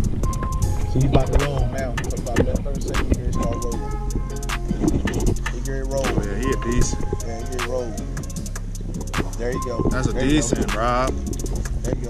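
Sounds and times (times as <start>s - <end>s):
music with steady beat and deep bass: 0.0s - 12.0s
person singing or rapping: 0.9s - 8.4s, 9.1s - 12.0s.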